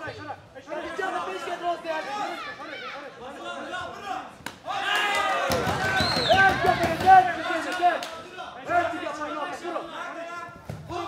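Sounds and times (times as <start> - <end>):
people talking and shouting: 0.0 - 11.0.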